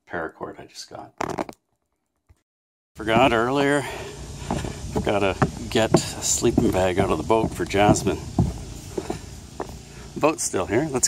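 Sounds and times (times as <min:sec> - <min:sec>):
footsteps on dock walkway: 0:03.0 - 0:11.0.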